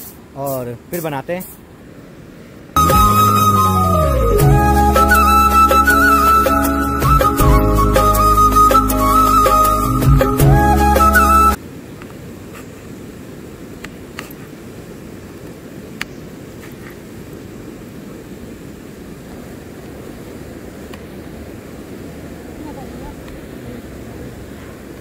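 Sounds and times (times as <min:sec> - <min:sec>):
river rushing: 0:01.6 - 0:25.0.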